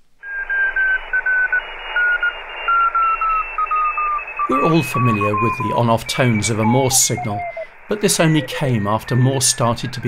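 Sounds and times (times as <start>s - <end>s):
radio hiss: 0.0s - 10.0s
morse code tone: 0.2s - 10.0s.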